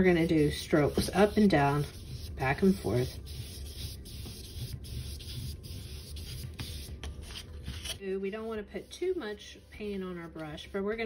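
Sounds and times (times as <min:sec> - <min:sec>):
paintbrush scratchy brushing: 0:00.0 - 0:08.0, 0:08.7 - 0:11.0.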